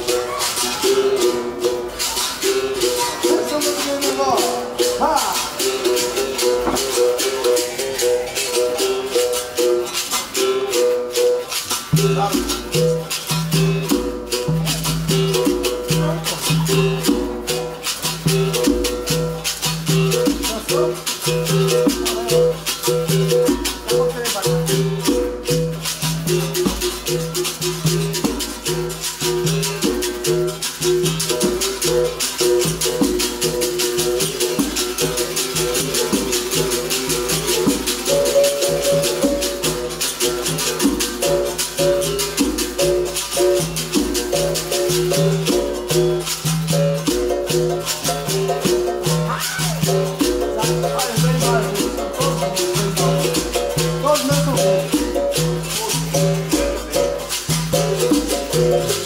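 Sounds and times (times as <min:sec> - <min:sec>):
basket shakers rattling: 0:00.0 - 0:59.0.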